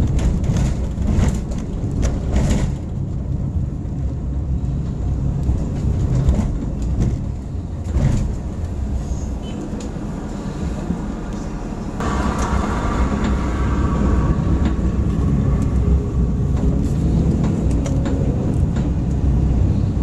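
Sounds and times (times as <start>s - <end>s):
car road and engine rumble: 0.0s - 20.0s
higher hum: 11.3s - 17.1s.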